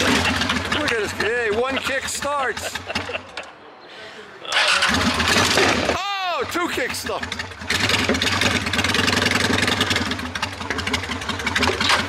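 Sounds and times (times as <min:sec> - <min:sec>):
motorcycle engine running: 0:00.0 - 0:03.2, 0:04.6 - 0:12.0.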